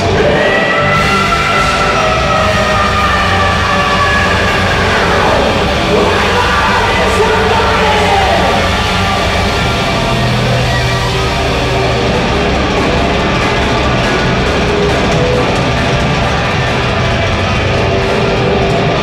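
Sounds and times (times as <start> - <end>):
rock band playing live: 0.0 - 19.0.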